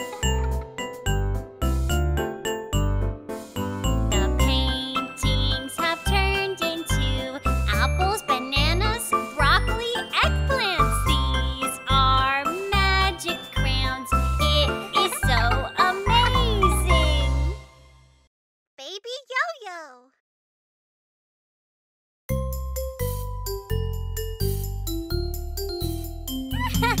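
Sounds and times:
person singing: 4.2 - 17.6
bouncy beat: 9.6 - 17.4.

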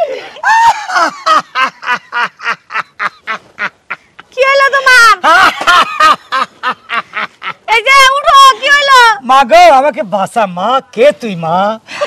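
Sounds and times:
man laughing theatrically: 0.4 - 4.0, 5.2 - 7.6.

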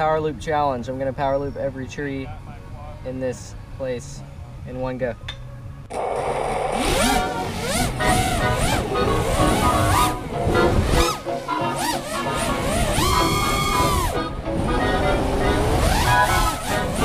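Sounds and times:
drone motors whining: 5.8 - 17.0
music: 6.9 - 17.0.

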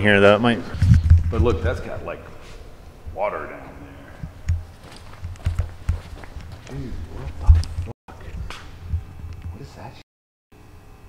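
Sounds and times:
footsteps on a walkway: 4.3 - 7.9.

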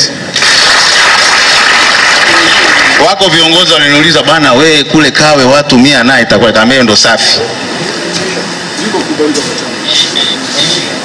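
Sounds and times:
audience applauding: 0.3 - 3.6.

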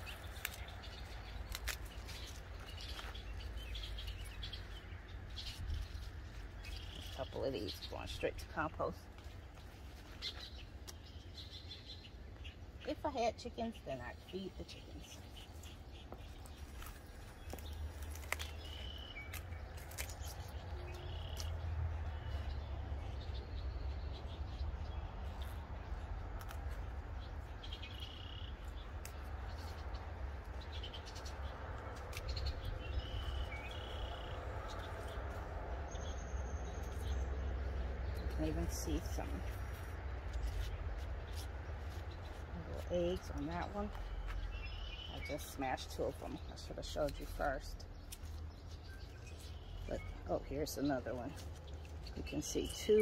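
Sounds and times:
leaves snapping and rustling: 0.0 - 11.2, 15.4 - 22.5, 25.1 - 35.9, 45.3 - 53.0
bird chirps: 9.6 - 25.6, 27.2 - 53.0.

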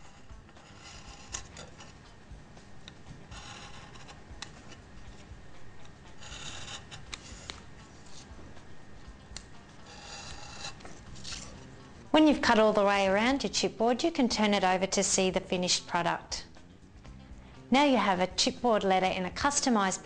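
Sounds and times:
knife blade cutting paper: 0.0 - 2.0, 2.8 - 8.3, 9.3 - 11.7.

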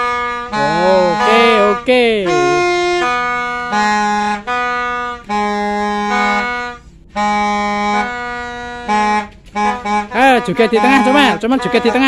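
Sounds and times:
toy trumpets blowing: 0.0 - 12.0.

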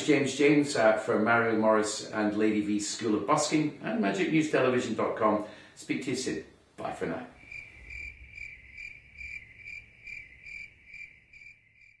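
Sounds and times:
cricket chirping: 7.4 - 12.0.

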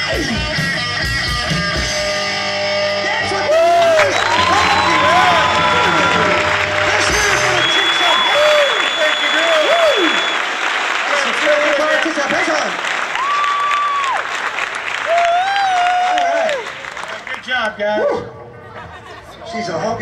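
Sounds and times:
audience applauding and cheering: 3.3 - 17.6
whoops and shouts: 3.4 - 10.4, 13.1 - 14.2, 15.0 - 16.7.

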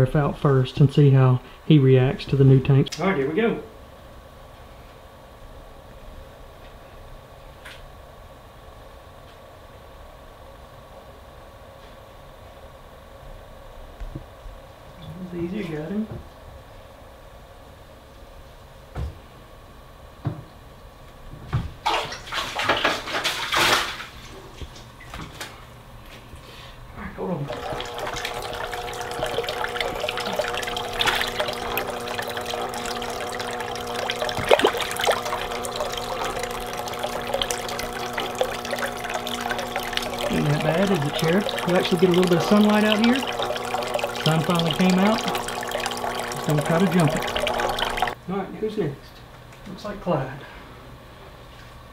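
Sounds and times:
steady hum: 26.8 - 48.2
water trickling into plastic tubs: 27.5 - 48.2.

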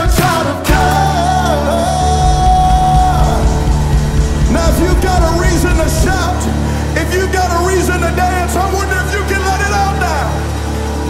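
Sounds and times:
man singing: 0.0 - 9.0
worship band playing: 0.0 - 11.0.

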